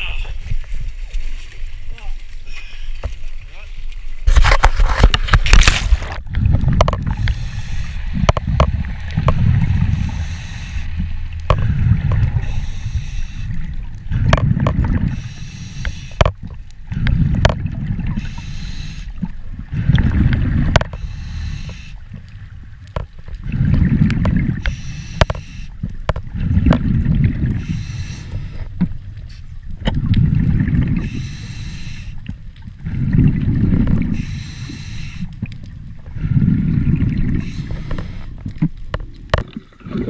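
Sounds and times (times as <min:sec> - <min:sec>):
rumble of exhaled bubbles: 0:04.2 - 0:40.0
regulator hissing on inhalation: 0:18.2 - 0:19.1.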